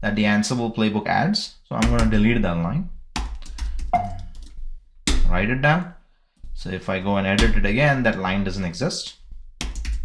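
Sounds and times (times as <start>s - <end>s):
keyboard keys clicking: 3.4s - 4.5s.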